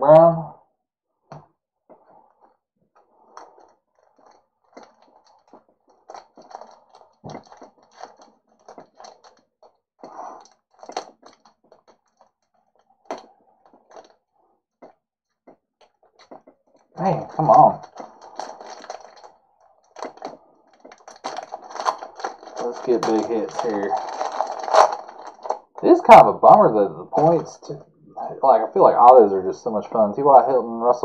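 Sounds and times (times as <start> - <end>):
foil wrapper crinkling and tearing: 20.0 - 25.7.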